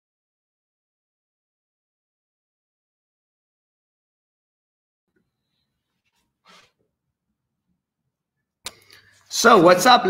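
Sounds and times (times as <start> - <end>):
faint room noise: 5.1 - 10.0.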